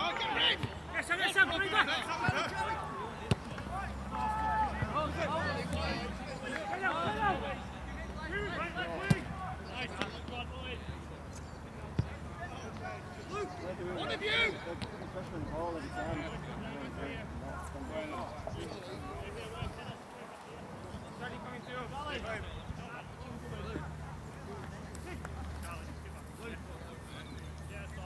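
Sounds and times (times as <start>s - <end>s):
footballers shouting: 0.0s - 11.1s, 11.8s - 20.4s.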